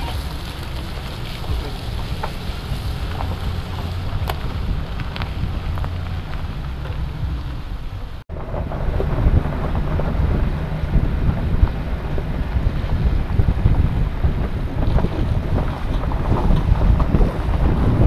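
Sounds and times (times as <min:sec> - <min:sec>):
tyres crunching on stones: 0:00.0 - 0:08.2
pickup truck engine rumble: 0:00.0 - 0:18.0
wind buffeting microphone: 0:00.0 - 0:18.0.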